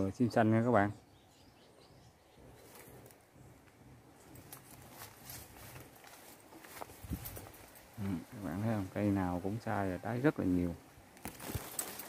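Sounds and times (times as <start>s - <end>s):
soft clicks and rustles: 11.1s - 12.0s.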